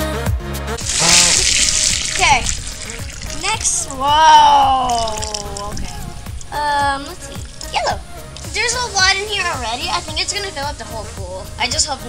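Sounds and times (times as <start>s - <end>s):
hose water spraying into balloons: 0.8s - 12.0s.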